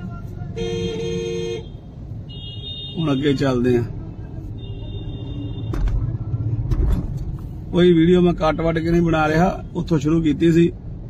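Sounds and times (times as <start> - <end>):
car rumble from inside cabin: 3.4 - 10.6.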